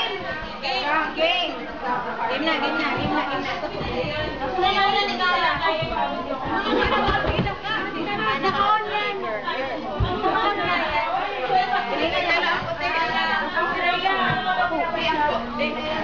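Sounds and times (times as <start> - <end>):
women chattering: 0.0 - 16.0.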